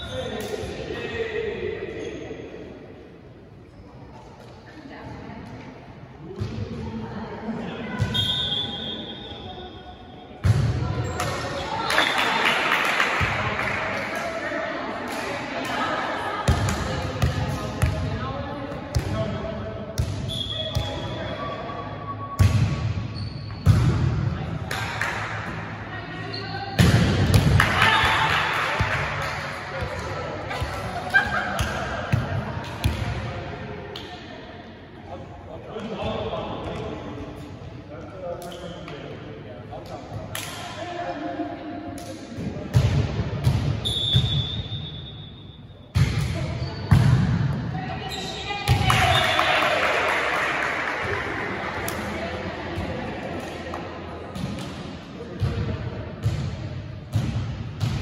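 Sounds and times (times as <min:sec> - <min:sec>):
volleyball hits in echoing gym: 0:06.2 - 0:08.8, 0:10.3 - 0:26.0, 0:26.7 - 0:34.4, 0:35.1 - 0:58.0.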